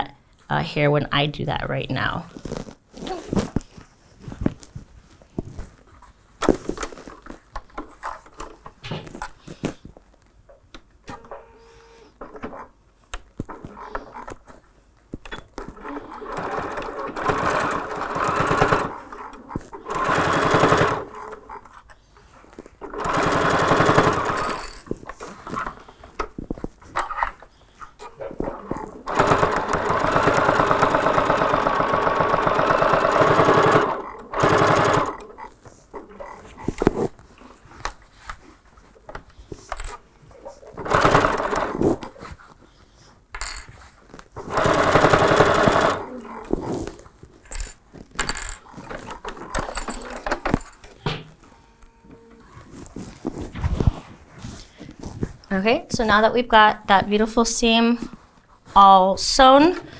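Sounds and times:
electric sewing machine stitching: 15.7 - 21.6, 22.8 - 24.9, 28.2 - 36.2, 40.7 - 42.1, 44.4 - 47.0.

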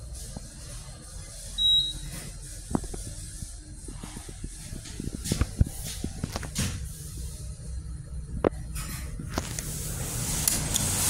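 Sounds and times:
elevator high beep: 1.6 - 2.1.

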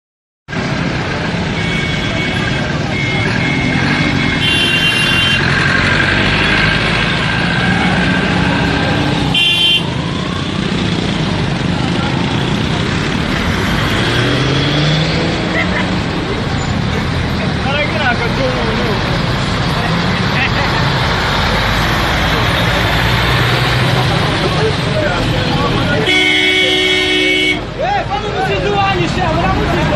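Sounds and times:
vehicle horns honking: 1.5 - 5.6, 9.3 - 10.0, 25.9 - 27.7.

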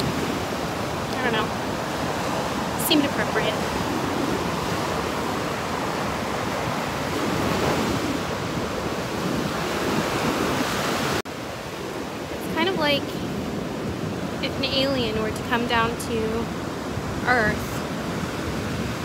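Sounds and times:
ocean surf breaking: 0.0 - 19.0.

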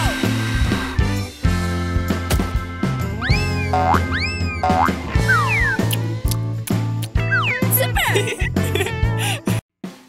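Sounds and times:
cartoon whistle-like glides: 3.2 - 6.0
light background music: 4.6 - 9.6.

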